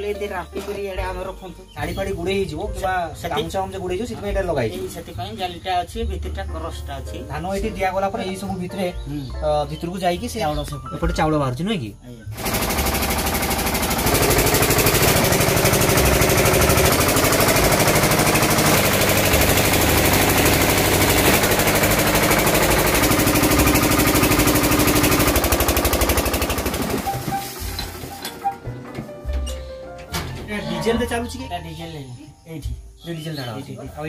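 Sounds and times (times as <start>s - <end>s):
music playing: 0.0s - 34.0s
rice milling machine running: 12.3s - 28.5s
diesel engine beating: 12.3s - 31.0s.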